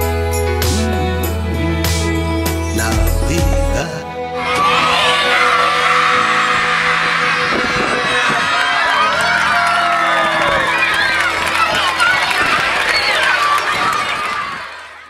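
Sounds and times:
children cheering and shouting: 0:04.4 - 0:15.0.

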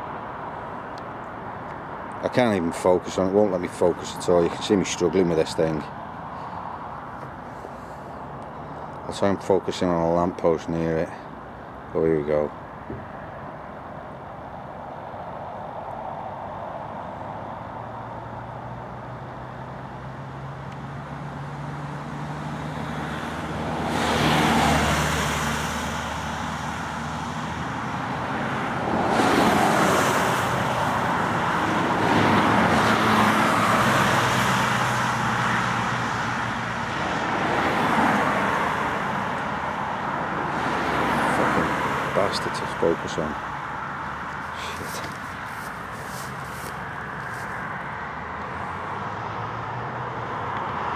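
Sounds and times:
cars passing close by: 0:00.0 - 0:50.9.

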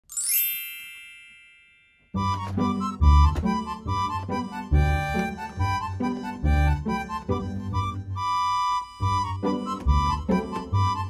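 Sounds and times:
bright bell-like chime: 0:00.0 - 0:02.4.

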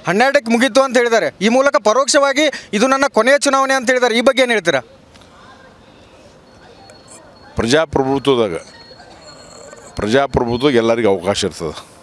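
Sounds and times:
low indistinct crowd voices: 0:04.5 - 0:12.0.

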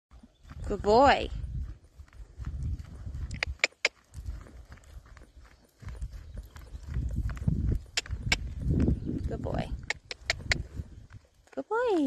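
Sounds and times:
horse hoofbeats trotting: 0:00.1 - 0:12.0
sharp clicks: 0:07.9 - 0:08.6, 0:09.8 - 0:10.7.

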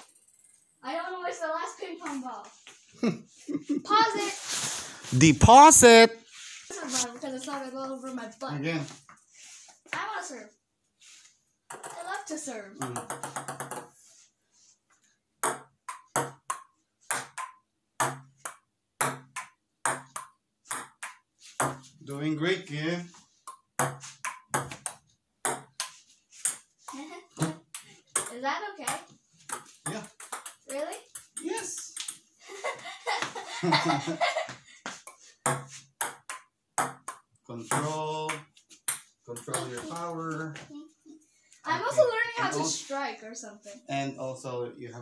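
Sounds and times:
person laughing: 0:03.0 - 0:03.9, 0:32.5 - 0:34.5
ping-pong ball clicking: 0:29.5 - 0:32.2, 0:35.5 - 0:37.3.

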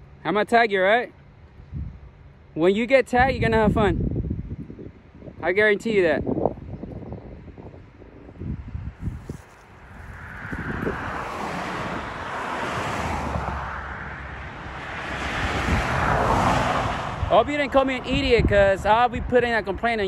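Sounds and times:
wind buffeting microphone: 0:01.5 - 0:02.3, 0:03.1 - 0:20.0
truck tyre noise passing: 0:08.0 - 0:19.8.

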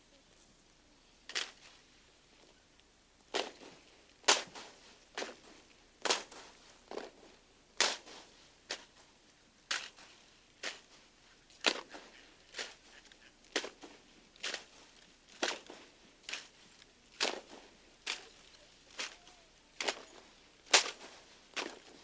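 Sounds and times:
hands slapping rifles: 0:01.3 - 0:01.6, 0:03.3 - 0:07.2, 0:07.8 - 0:09.1, 0:09.7 - 0:11.0, 0:11.6 - 0:19.2, 0:19.8 - 0:22.0.

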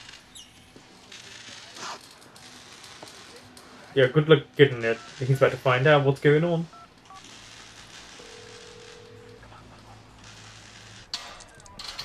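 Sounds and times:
telephone ringing tone: 0:08.2 - 0:09.5.

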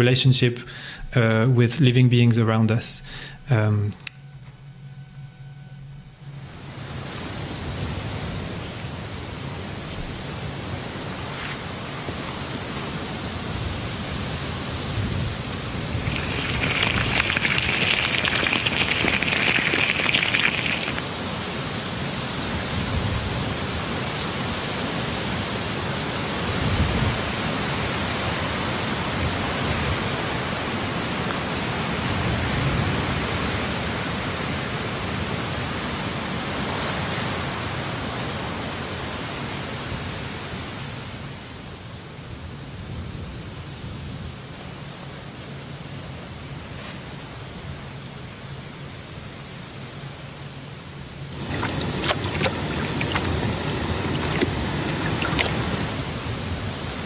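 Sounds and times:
steady rushing hiss: 0:15.8 - 0:21.2, 0:51.3 - 0:56.2.

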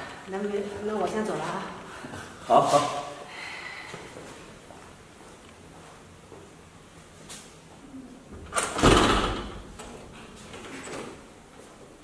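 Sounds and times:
door opening clatter: 0:08.4 - 0:11.2.

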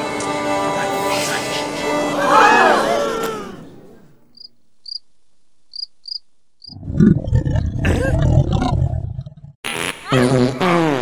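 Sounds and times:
cricket chirps: 0:04.3 - 0:06.8.

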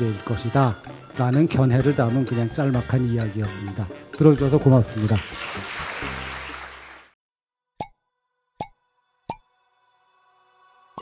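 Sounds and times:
audience applause: 0:04.9 - 0:07.2.

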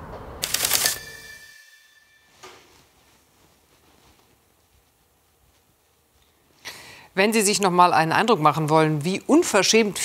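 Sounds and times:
high ringing tone: 0:00.7 - 0:03.2.

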